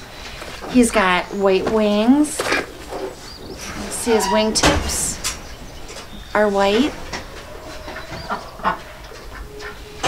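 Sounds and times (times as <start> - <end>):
ducks calling: 0.0 - 10.0.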